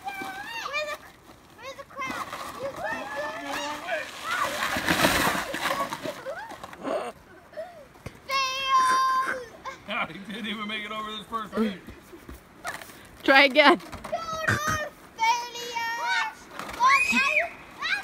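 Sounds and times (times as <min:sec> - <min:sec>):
plastic sled scraping on icy snow: 0:00.0 - 0:07.0, 0:12.6 - 0:18.0
children's excited voices: 0:14.2 - 0:18.0
child squealing: 0:16.8 - 0:18.0.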